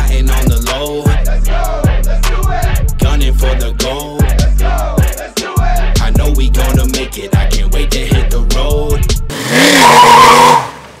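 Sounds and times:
song beat: 0.0s - 9.3s
car engine revving: 9.2s - 11.0s
tyres squealing: 9.4s - 10.8s.

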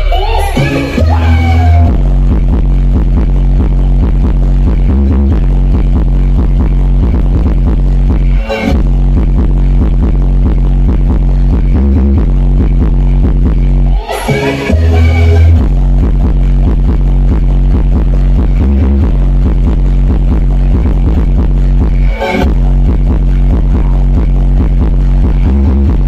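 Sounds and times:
electronic dance music: 0.0s - 26.0s.

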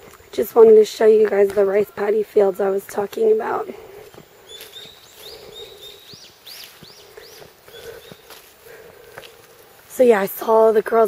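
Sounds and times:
faint footsteps: 0.0s - 11.0s
songbird singing: 0.0s - 11.0s.

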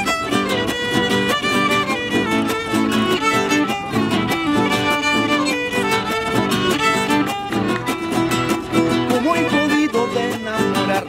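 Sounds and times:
acoustic guitar strumming: 0.0s - 11.0s
violin melody: 0.0s - 11.0s
man singing: 8.8s - 11.0s.

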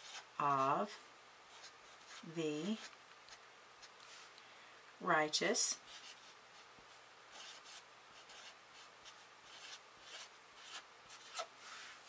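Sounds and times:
marker writing on paper: 0.0s - 4.0s, 7.3s - 11.5s.

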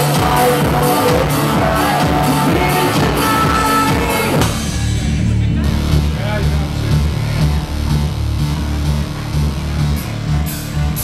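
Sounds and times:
people talking: 0.0s - 7.6s
repeating bass line: 0.0s - 11.0s.

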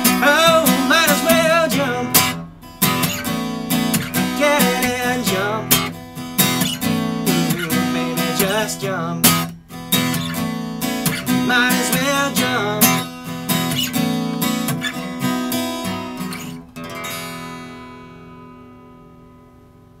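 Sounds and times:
acoustic guitar strummed: 0.0s - 20.0s.

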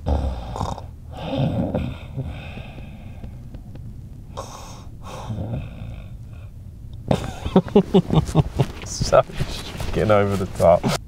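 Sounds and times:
person stifling laughter: 7.1s - 8.9s.

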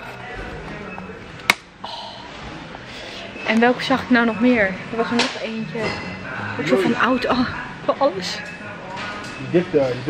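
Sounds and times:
faint background music: 0.0s - 10.0s
shop floor ambience: 0.0s - 10.0s.

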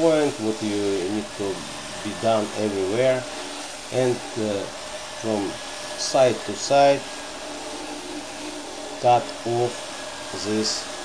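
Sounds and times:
floor sander grinding plywood: 0.0s - 11.0s.

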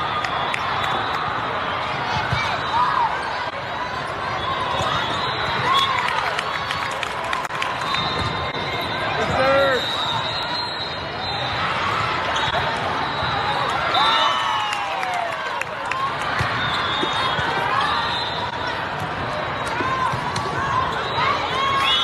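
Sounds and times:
hubbub of voices: 0.0s - 22.0s
volleyballs struck and bouncing: 18.9s - 20.7s.

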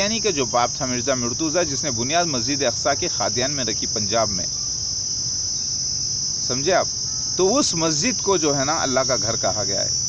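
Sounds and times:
man talking: 0.0s - 4.5s, 6.4s - 10.0s
high-pitched insect chorus: 0.0s - 10.0s.

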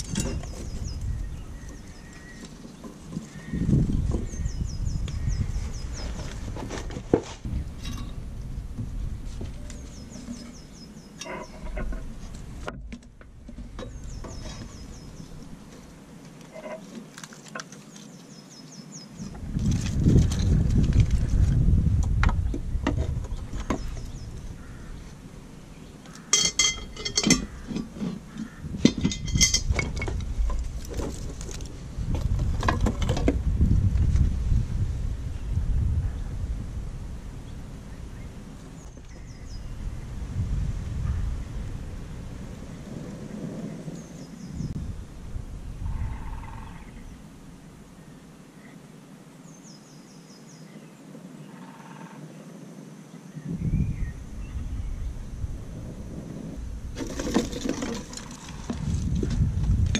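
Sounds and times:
wooden kindling clattering: 0.0s - 4.5s, 26.3s - 33.5s, 56.9s - 59.9s
wind rumble on microphone: 0.0s - 16.7s, 19.1s - 48.7s, 51.3s - 59.9s.

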